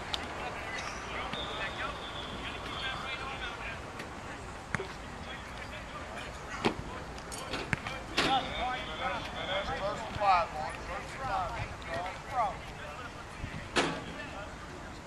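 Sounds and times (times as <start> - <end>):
distant voices calling out: 0.0 - 15.0.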